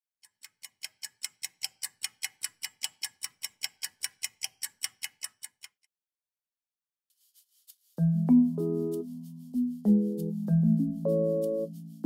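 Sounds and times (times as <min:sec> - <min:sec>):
mechanical watch ticking: 0:00.2 - 0:05.8.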